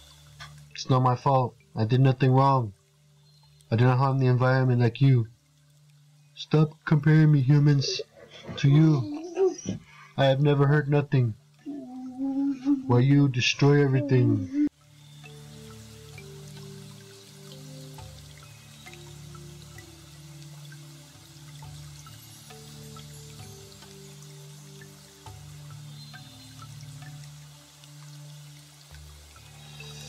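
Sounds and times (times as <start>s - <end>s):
faint hiss with crackles: 0.0s - 30.0s
slow low background music: 0.0s - 30.0s.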